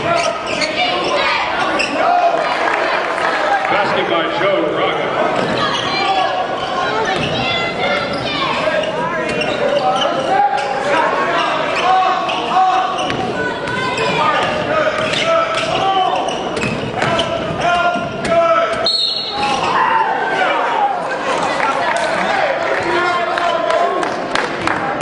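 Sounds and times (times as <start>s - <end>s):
people shouting and talking: 0.0s - 25.0s.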